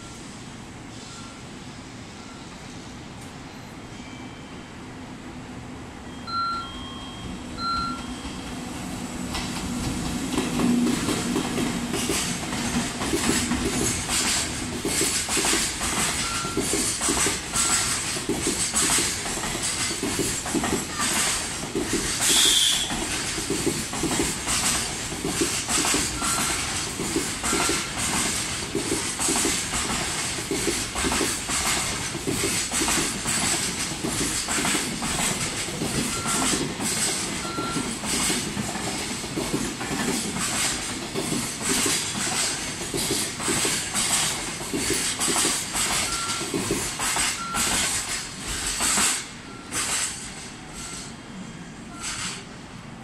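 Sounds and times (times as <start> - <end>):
train rolling rumble: 7.3 - 53.0
train wheels clattering: 9.2 - 51.1.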